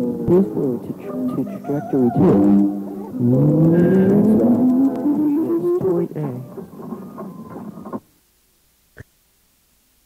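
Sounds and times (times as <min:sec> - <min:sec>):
low buzzing tone rising in pitch: 0:02.3 - 0:05.7.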